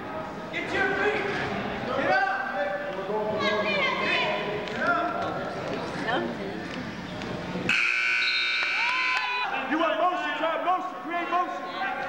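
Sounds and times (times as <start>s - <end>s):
scoreboard buzzer: 7.7s - 9.1s.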